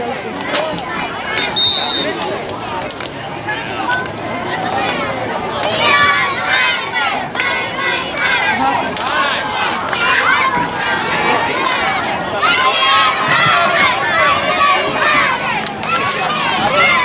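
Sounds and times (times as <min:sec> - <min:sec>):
children shouting: 0:00.0 - 0:17.0
crowd babble: 0:00.0 - 0:17.0.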